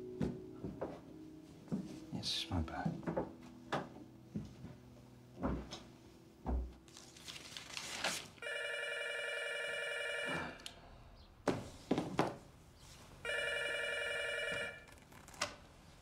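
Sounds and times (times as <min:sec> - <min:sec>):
desk telephone ringing: 0:08.4 - 0:10.6, 0:13.2 - 0:14.9.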